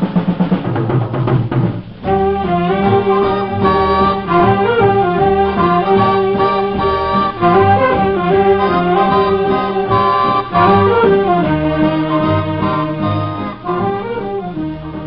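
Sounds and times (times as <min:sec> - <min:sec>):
drums rhythmic passage: 0:00.0 - 0:15.0
swing dance orchestra: 0:00.0 - 0:15.0
brass and reed chords: 0:02.0 - 0:15.0.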